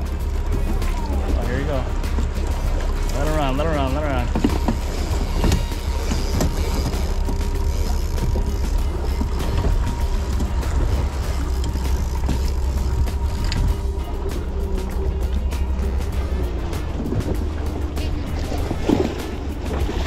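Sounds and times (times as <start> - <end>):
background music: 0.0 - 20.0
boat engine rumble: 0.0 - 20.0
water rushing: 0.0 - 20.0
wind: 0.0 - 20.0.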